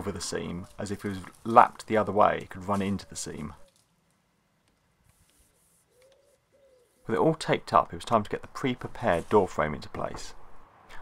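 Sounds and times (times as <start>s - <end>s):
faint bird call: 5.9s - 7.1s.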